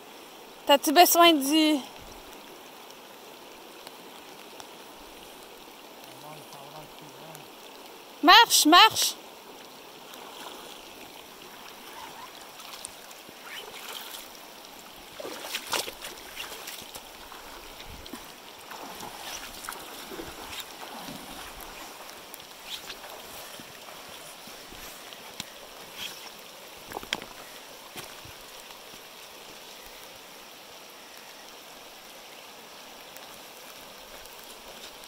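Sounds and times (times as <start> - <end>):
water splashes: 0.0 - 30.3
river rushing over stones: 0.0 - 35.0.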